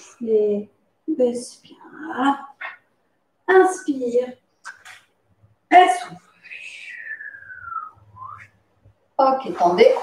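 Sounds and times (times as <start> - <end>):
whistling exhale through lips: 6.6 - 8.5
short rising whistle tone: 6.9 - 8.6.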